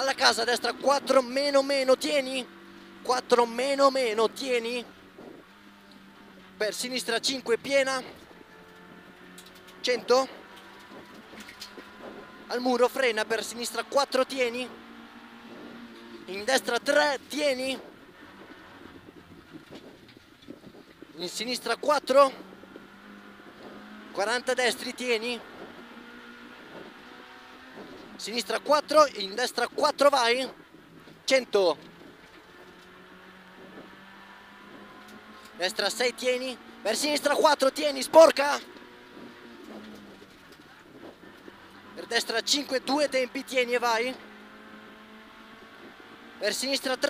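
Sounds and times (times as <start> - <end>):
car engine and road noise: 0.0 - 47.0.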